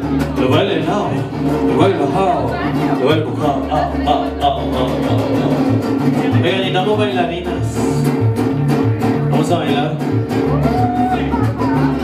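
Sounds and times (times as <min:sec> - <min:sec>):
bass line: 0:00.0 - 0:12.0
mariachi band playing: 0:00.0 - 0:12.0
strummed guitars: 0:00.0 - 0:12.0
man's voice on microphone: 0:00.3 - 0:08.1, 0:09.3 - 0:10.2, 0:10.9 - 0:12.0.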